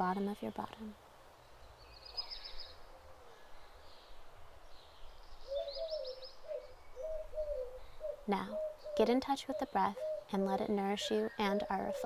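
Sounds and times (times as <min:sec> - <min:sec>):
bird chirping trill: 0:03.6 - 0:12.0
dove cooing: 0:05.5 - 0:12.0.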